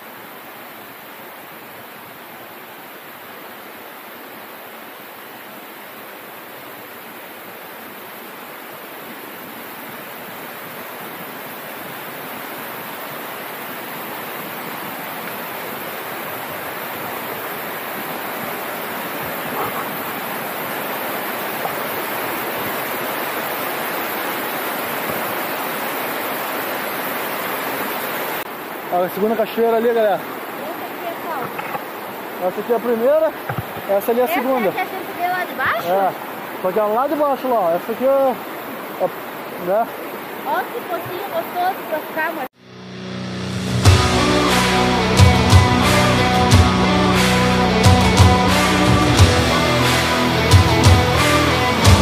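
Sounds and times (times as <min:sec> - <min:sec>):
waterfall rushing: 0:00.0 - 0:52.0.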